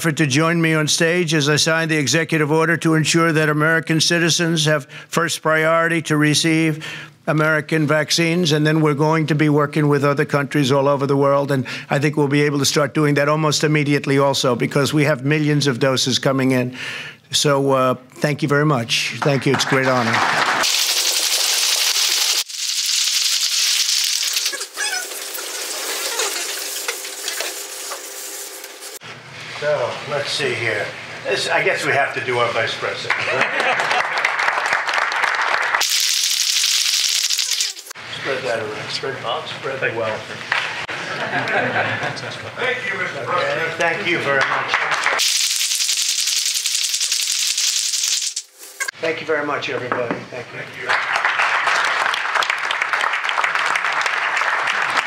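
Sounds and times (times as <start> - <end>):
audience applauding: 19.2 - 22.5, 33.0 - 36.2, 44.3 - 45.2, 50.9 - 55.0.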